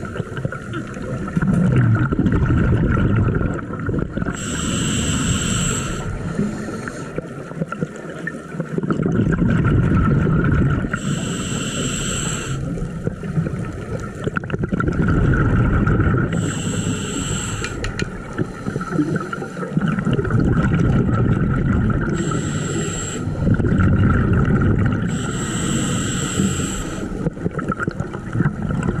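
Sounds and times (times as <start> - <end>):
exhaled bubbles rumbling: 0.0 - 4.6, 5.2 - 11.4, 12.6 - 29.0
regulator inhalation hiss with whistle: 4.4 - 7.0, 11.0 - 12.7, 16.4 - 17.8, 22.2 - 23.3, 25.1 - 27.1.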